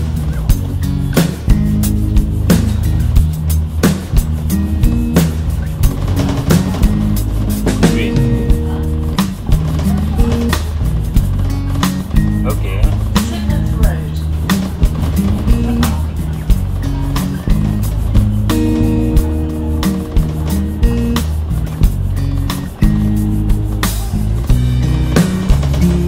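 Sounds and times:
deep stepping bassline: 0.0s - 26.0s
steady drum beat: 0.0s - 26.0s.

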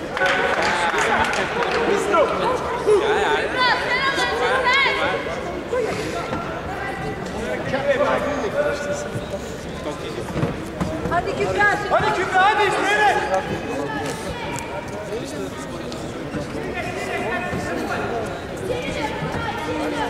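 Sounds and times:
spectators talking and calling out: 0.0s - 20.0s
bursts of raised voices: 11.2s - 14.5s.

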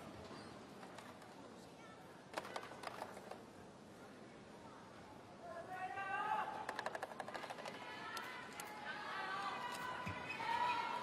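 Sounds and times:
arena background noise: 0.0s - 11.0s.

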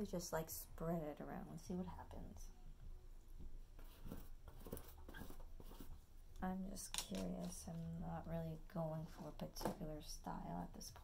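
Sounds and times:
paintbrush scratching on canvas: 3.8s - 6.0s.

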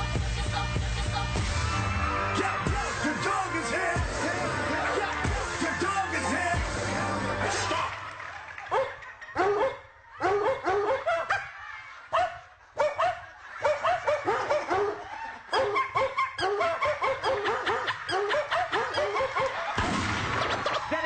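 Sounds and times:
dog barking rapidly: 12.2s - 19.6s.

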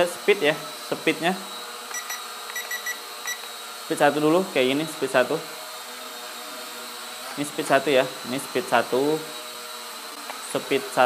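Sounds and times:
short high beeps: 1.9s - 3.4s.

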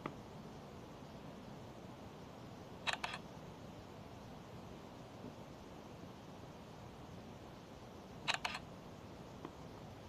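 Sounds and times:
faint steady hiss: 0.0s - 10.0s
sharp clicks: 2.9s - 3.2s, 8.3s - 8.7s.

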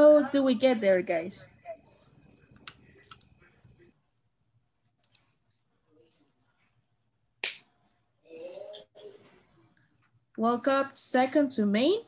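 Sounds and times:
faint voice: 8.2s - 9.4s.

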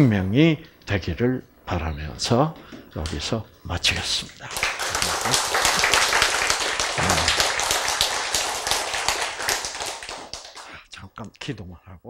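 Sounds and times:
audience applauding: 4.5s - 10.8s.

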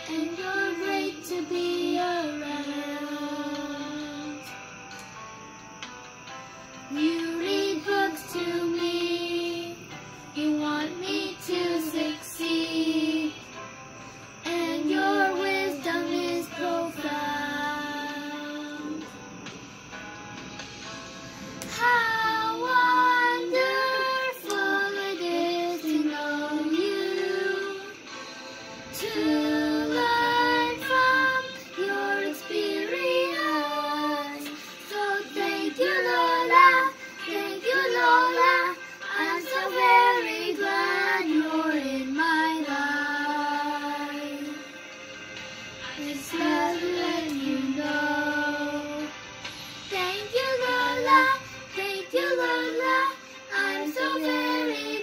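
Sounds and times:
child singing slow melody: 0.0s - 19.9s, 21.6s - 28.3s, 28.9s - 44.9s, 45.8s - 55.0s.

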